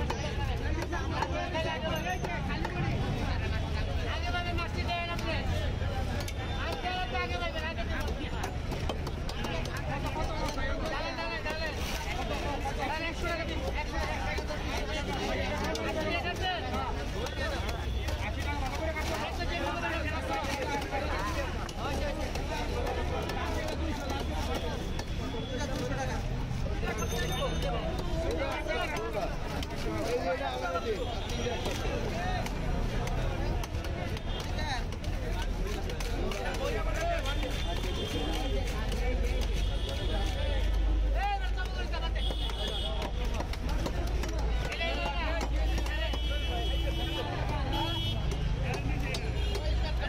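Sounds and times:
people talking: 0:00.0 - 0:50.0.

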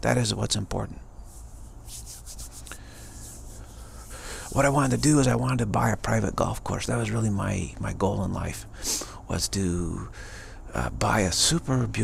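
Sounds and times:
low steady hum: 0:00.0 - 0:12.0
faint rustling: 0:01.2 - 0:05.2
soft strokes: 0:01.2 - 0:05.4.

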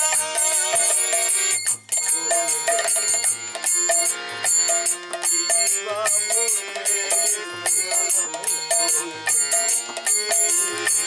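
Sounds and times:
brass hand cymbals ringing: 0:00.0 - 0:11.0
drum notes: 0:00.0 - 0:11.0
harmonium chords: 0:00.0 - 0:11.0.

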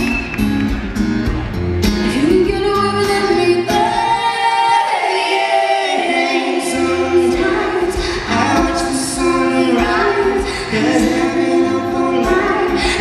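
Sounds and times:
acoustic guitar: 0:00.0 - 0:13.0
man and woman singing: 0:02.2 - 0:13.0.

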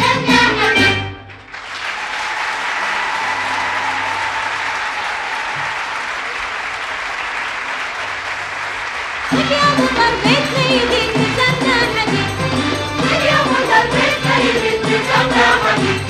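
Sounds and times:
audience applauding: 0:01.2 - 0:10.3.

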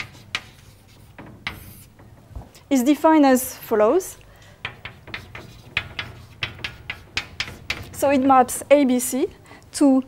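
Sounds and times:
chalk tapping on blackboard: 0:00.0 - 0:02.2, 0:04.6 - 0:08.9.

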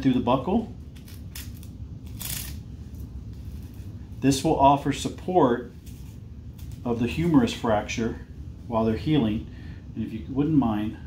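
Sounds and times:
strap sliding through buckle: 0:01.0 - 0:02.6.

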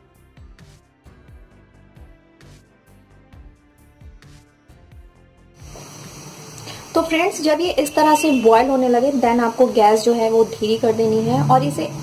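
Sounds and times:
soft background music: 0:00.0 - 0:12.0
water boiling in a pot: 0:05.6 - 0:12.0.

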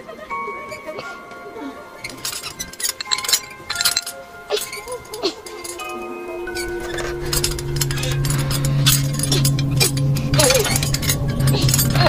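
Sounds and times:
small metallic clinks and ticks: 0:02.0 - 0:06.0, 0:06.6 - 0:12.0.

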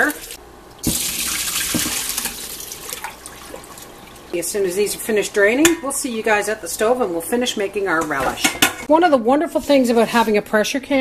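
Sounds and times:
tap water splashing in a sink: 0:00.0 - 0:04.3.

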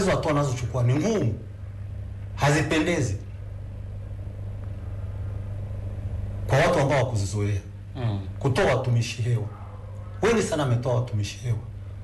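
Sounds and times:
low hum: 0:00.0 - 0:12.0.

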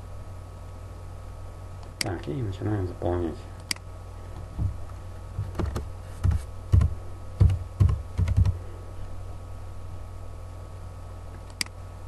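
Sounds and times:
typing on computer keyboard: 0:05.5 - 0:08.6.

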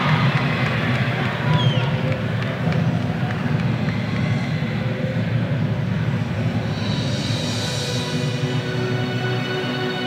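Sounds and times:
arena crowd rumble: 0:00.0 - 0:07.1.

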